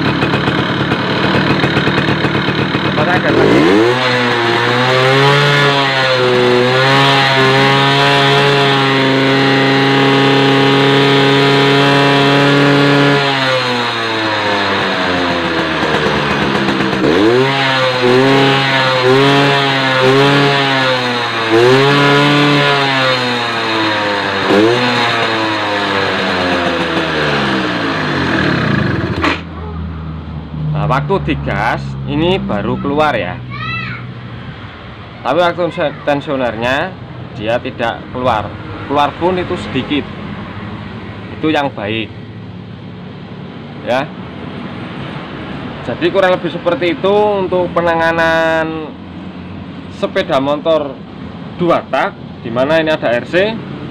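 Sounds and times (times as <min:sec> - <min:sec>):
motorcycle engine revving: 0:00.0 - 0:33.5, 0:34.1 - 0:53.9.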